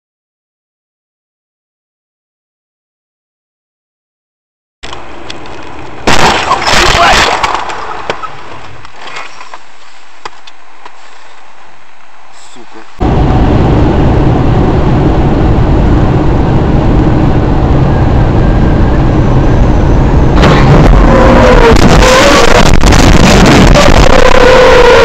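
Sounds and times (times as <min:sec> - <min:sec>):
car road and engine noise: 0:04.8 - 0:25.0
crackling and wavering squeal: 0:20.0 - 0:25.0.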